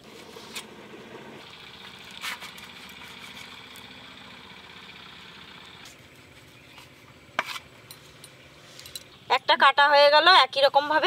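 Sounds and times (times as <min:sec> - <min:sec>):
mechanical engine hum: 0:00.0 - 0:11.0.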